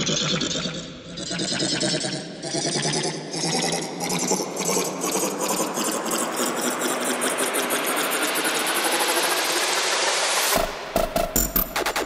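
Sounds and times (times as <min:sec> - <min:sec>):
fast ticking techno percussion: 0:04.2 - 0:12.0
noise riser: 0:05.6 - 0:12.0.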